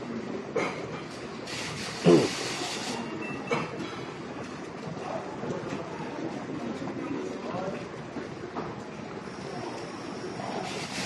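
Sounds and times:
busy room din: 0.0s - 11.0s.

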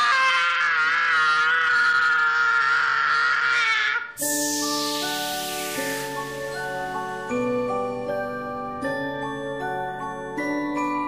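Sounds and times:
person screaming: 0.0s - 4.2s.

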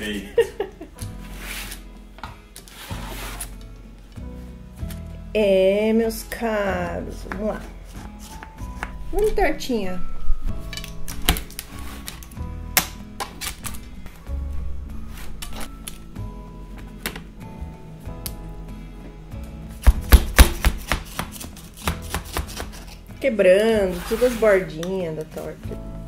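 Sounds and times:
soft background music: 0.0s - 26.0s.

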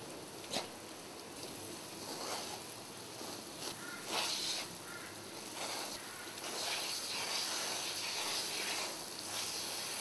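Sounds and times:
lawn sprinkler spray hissing: 0.0s - 10.0s.

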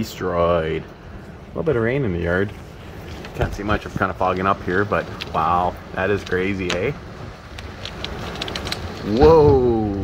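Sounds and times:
low rumble of wind: 0.0s - 10.0s
rain ticking on window glass: 0.0s - 10.0s.

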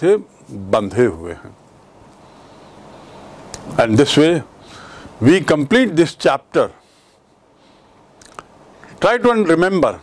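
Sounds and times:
mouth click: 8.2s - 8.5s.

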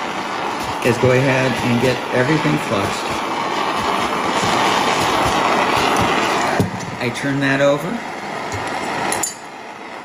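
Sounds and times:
gas torch hissing: 0.0s - 10.0s.

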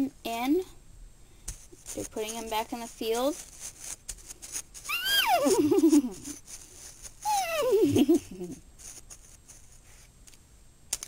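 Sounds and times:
child imitating horse neighing: 4.9s - 5.7s, 7.3s - 7.9s.

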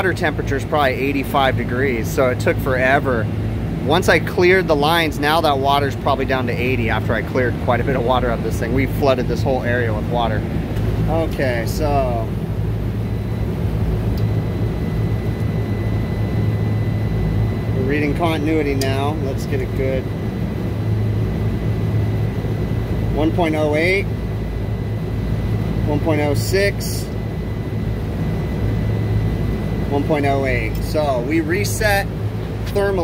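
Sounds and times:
refrigeration units humming: 0.0s - 33.0s.

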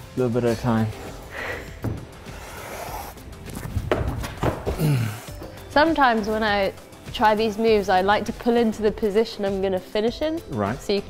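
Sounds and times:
faint background music: 0.0s - 11.0s
shoes scuffing on climbing wall: 1.8s - 5.6s.

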